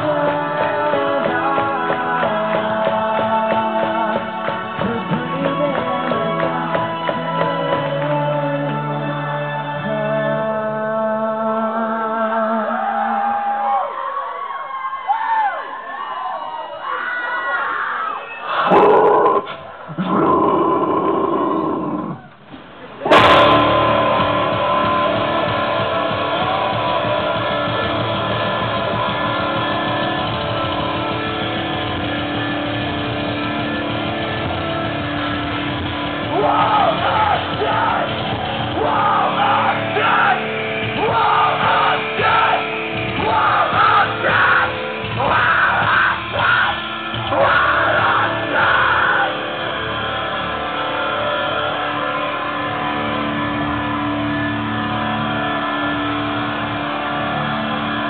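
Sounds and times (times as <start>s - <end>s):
electric guitars sustained chords: 0.0s - 13.0s, 23.1s - 58.0s
screamed and sung vocals: 0.0s - 22.4s, 36.2s - 58.0s
crowd shouting: 36.3s - 58.0s.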